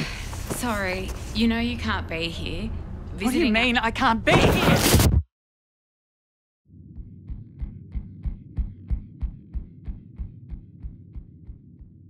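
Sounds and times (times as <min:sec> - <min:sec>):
low throbbing drone: 0:06.7 - 0:12.0.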